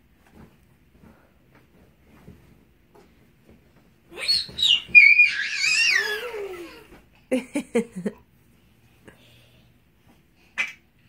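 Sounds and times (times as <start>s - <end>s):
young child squealing: 4.2s - 6.8s.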